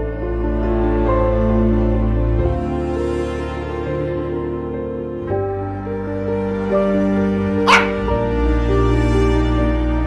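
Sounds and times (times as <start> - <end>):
dog bark: 7.6 - 8.2.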